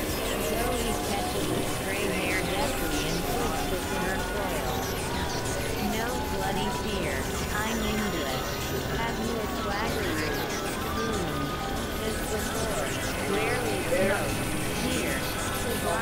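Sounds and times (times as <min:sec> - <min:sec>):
electronic drone music: 0:00.0 - 0:16.0.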